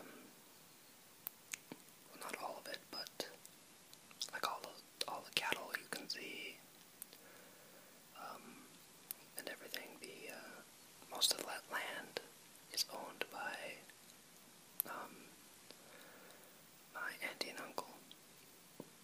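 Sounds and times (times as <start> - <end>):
person whispering: 2.1 - 3.4, 4.2 - 6.6, 8.1 - 8.7, 9.3 - 13.9, 14.8 - 15.3, 16.9 - 18.1.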